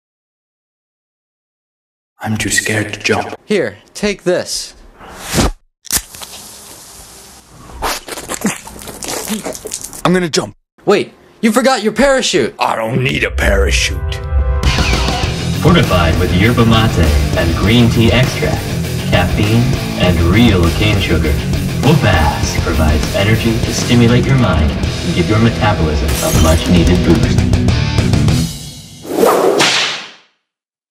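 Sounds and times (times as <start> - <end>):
whip-crack whoosh: 5.2 - 5.6, 29.0 - 30.3
heavy metal music: 13.1 - 28.7.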